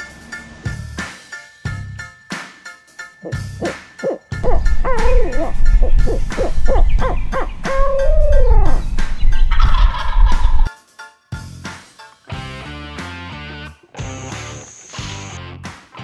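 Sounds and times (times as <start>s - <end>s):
turkey gobbling: 3.2s - 10.7s
deep rumble: 4.4s - 10.7s.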